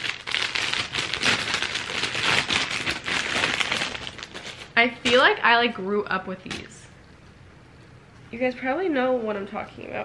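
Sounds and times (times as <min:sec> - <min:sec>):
plastic bag crinkling: 0:00.0 - 0:05.4.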